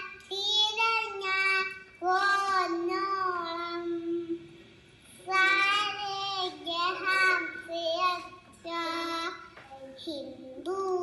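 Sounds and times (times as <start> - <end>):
girl singing unaccompanied: 0.0 - 4.6, 5.2 - 11.0.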